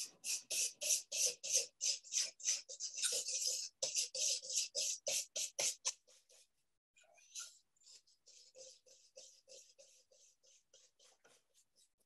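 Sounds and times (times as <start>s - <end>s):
spatula scraping in ceramic bowl: 0.4s - 6.0s.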